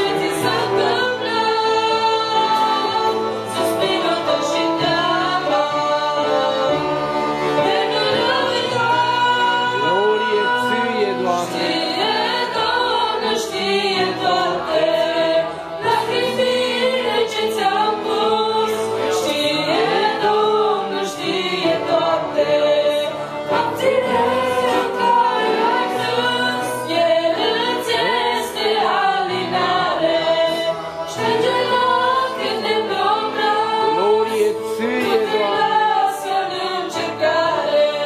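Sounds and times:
girls singing together: 0.0s - 9.8s, 11.7s - 34.0s, 35.5s - 38.0s
accordion: 0.0s - 38.0s.

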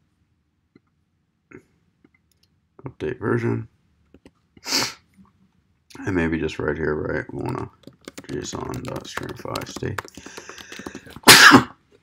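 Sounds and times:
person sneezing: 4.6s - 5.0s, 11.2s - 11.8s.

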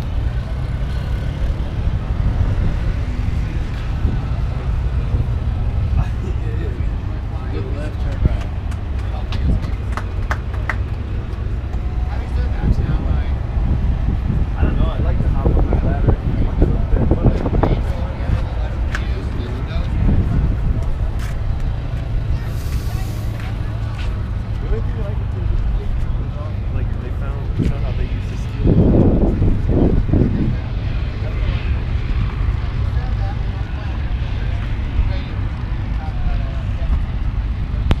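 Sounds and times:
steady low rumble: 0.0s - 38.0s
wind buffeting microphone: 1.5s - 38.0s
people talking: 4.0s - 13.4s, 14.5s - 38.0s.

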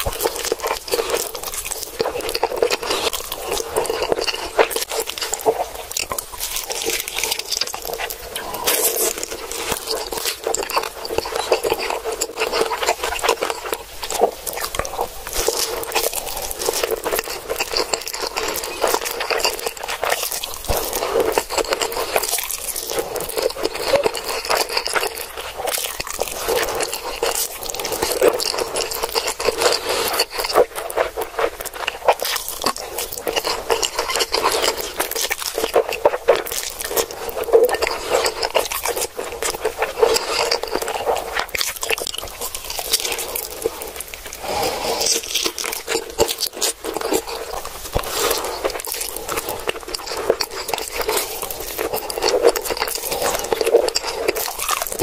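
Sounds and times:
noodles being slurped and chewed: 0.0s - 55.0s.

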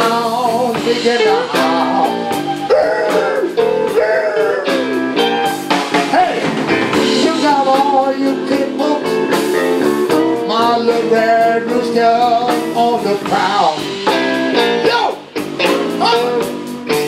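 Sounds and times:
live blues band playing: 0.0s - 17.0s.

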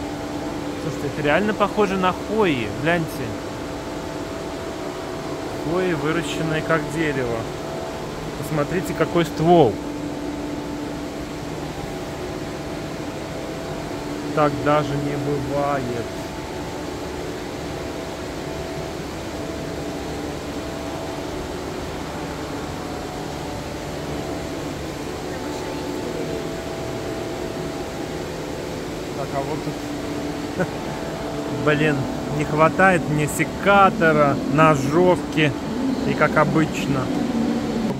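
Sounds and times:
faint steady tones: 0.0s - 37.9s
ventilation machinery humming: 0.0s - 37.9s.

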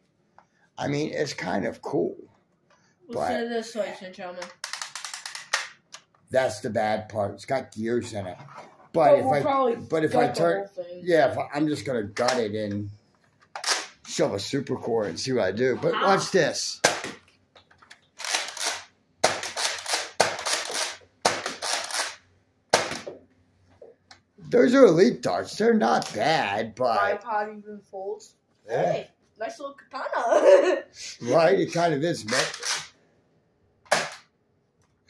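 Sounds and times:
dart blaster firing pop: 22.7s - 23.1s, 33.9s - 34.3s
dart blaster firing: 33.9s - 34.2s.

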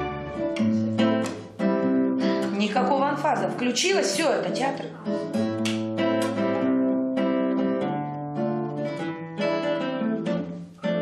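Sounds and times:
strummed acoustic guitar chords: 0.0s - 11.0s.

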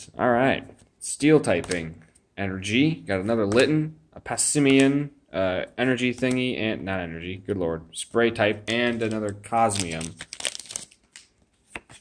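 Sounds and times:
card packaging crinkles and clicks: 8.6s - 12.0s.

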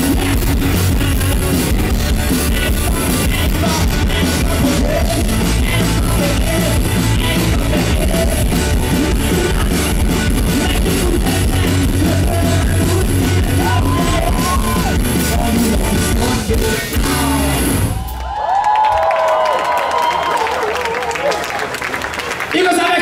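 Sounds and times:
person singing: 0.0s - 18.0s
live rock band playing: 0.0s - 18.2s
crowd cheering and whooping: 13.6s - 15.2s, 17.3s - 23.0s.

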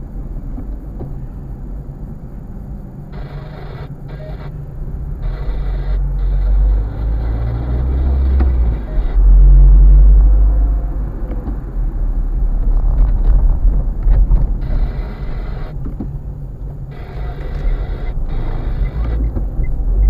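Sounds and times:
car rumble inside cabin: 0.0s - 20.0s.

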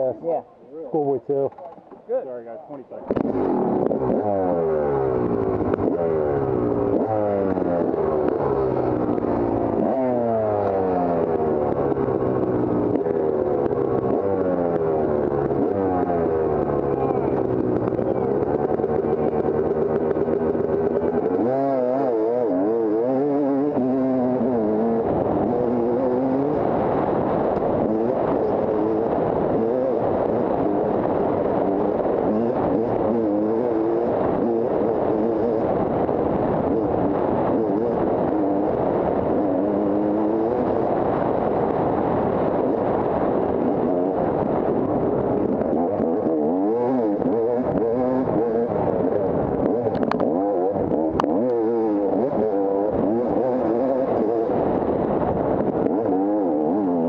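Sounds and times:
dirt bike engine revving: 3.1s - 57.0s.

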